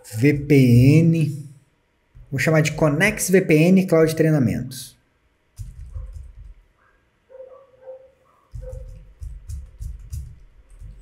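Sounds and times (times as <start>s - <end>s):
typing on a computer keyboard: 5.6s - 6.6s, 8.5s - 11.0s.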